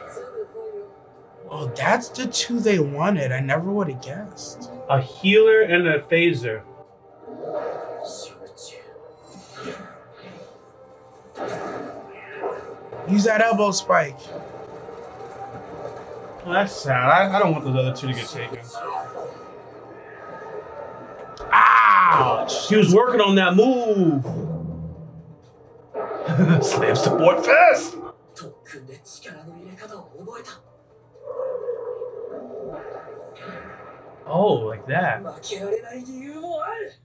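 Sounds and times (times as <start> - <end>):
faint background show audio: 0.0 - 6.8, 26.2 - 37.0.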